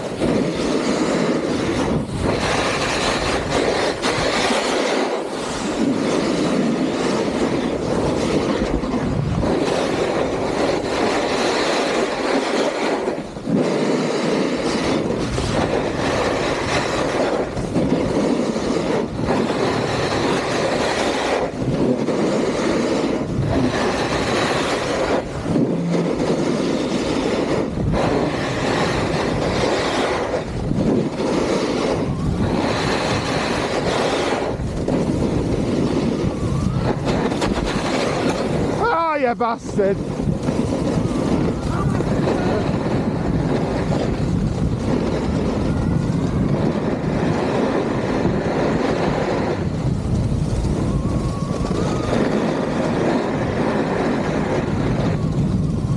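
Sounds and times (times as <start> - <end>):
ski edges scraping snow: 0.0 - 36.4, 37.0 - 45.6
wind rushing over microphone: 0.0 - 55.9.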